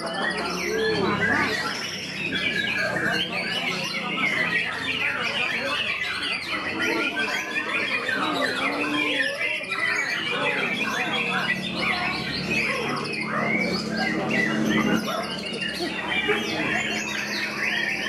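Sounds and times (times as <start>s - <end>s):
bird singing whistles and warbles: 0.0s - 18.0s
other songbirds: 0.0s - 18.0s
voices: 0.0s - 18.0s.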